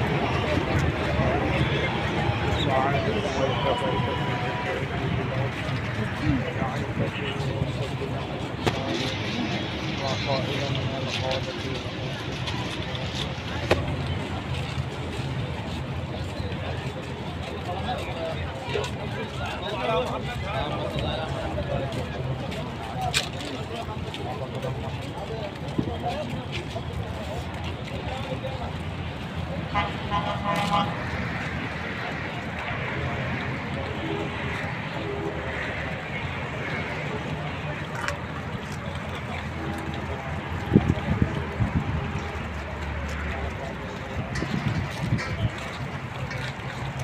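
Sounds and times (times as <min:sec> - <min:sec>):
crowd and traffic rumble: 0:00.0 - 0:47.0
faint voices: 0:00.0 - 0:47.0.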